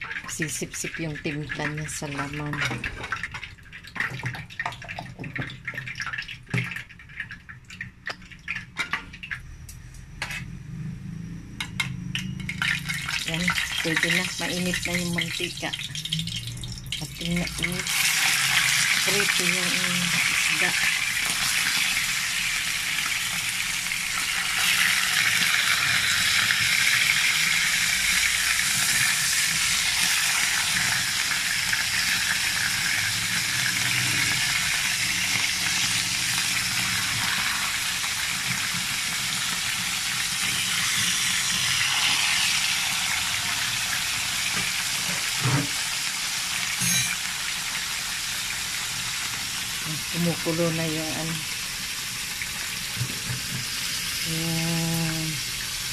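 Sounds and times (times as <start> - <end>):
fish sizzling in hot oil: 0.0 - 11.0, 11.6 - 55.9.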